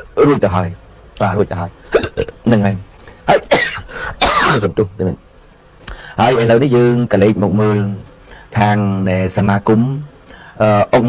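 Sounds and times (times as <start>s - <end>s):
man talking: 0.0s - 5.3s, 5.9s - 11.0s.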